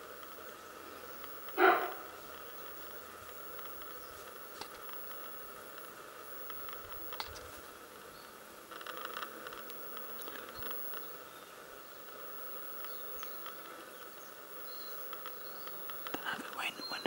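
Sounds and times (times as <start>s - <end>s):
faint insect hum: 0.0s - 17.0s
small clicks: 3.3s - 7.5s, 8.7s - 11.1s.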